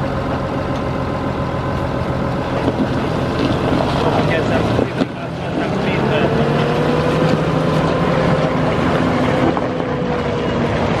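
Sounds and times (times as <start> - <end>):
tractor diesel engine running: 0.0 - 11.0.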